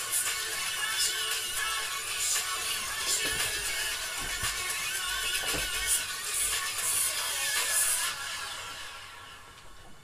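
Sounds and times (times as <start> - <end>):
distorted dance music: 0.0 - 9.8.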